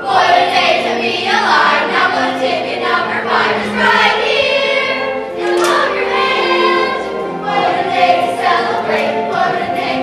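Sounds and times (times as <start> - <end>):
musical accompaniment: 0.0 - 10.0
young voices singing together: 0.0 - 10.0.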